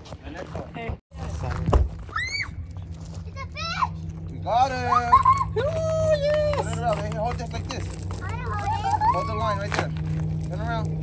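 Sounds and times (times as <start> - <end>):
steady low hum: 0.0 - 11.0
children squealing and shrieking: 2.1 - 2.7, 8.2 - 9.7.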